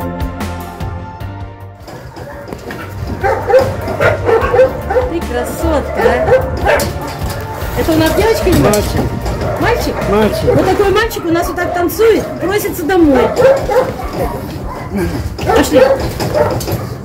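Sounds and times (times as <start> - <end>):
dogs yipping and whining: 1.8 - 17.0.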